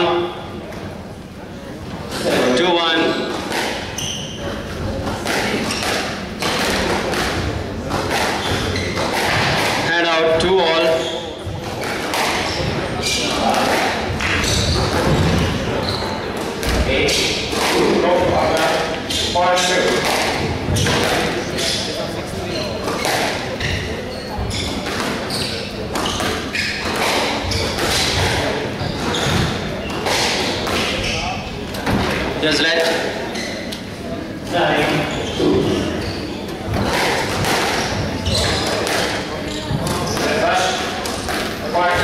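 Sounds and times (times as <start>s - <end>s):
squash ball impacts: 2.1s - 33.9s, 34.6s - 42.0s.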